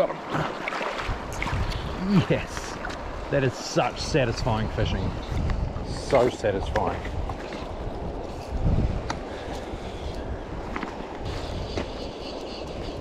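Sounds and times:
shallow river rushing: 0.0 - 13.0
wind buffeting microphone: 1.0 - 13.0.

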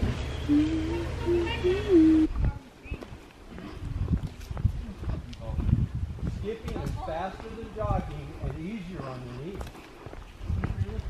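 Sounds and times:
footsteps on paved road: 0.0 - 11.0.

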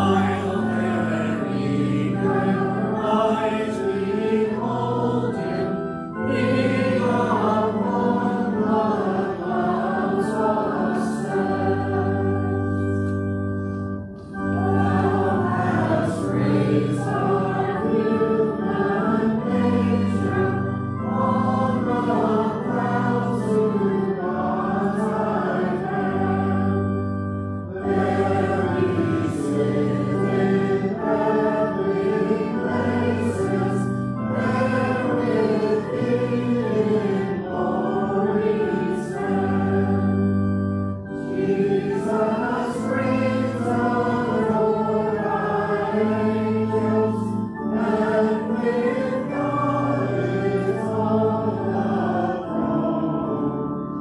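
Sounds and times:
congregation singing a hymn: 0.0 - 54.0
organ: 0.0 - 54.0.

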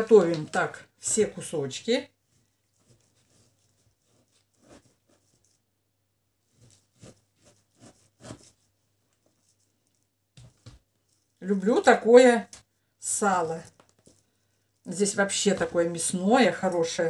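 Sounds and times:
knife cutting on wooden board: 6.5 - 8.6.

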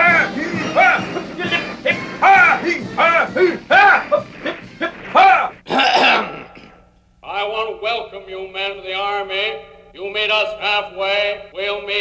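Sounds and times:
man barking marching cadence: 0.0 - 6.4.

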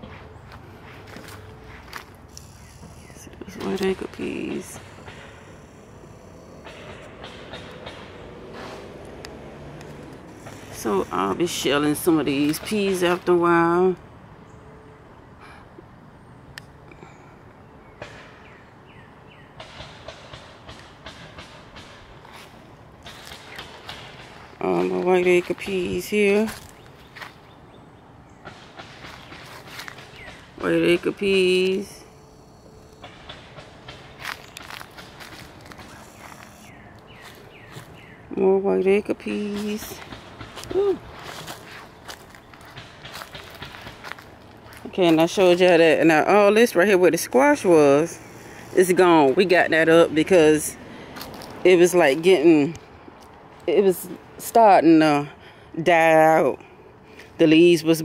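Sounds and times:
rustling of plants and leaves: 0.0 - 14.0, 19.6 - 58.0.

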